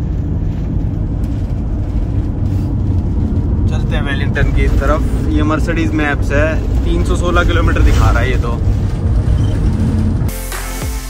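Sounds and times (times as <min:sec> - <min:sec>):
van engine and road rumble: 0:00.0 - 0:10.3.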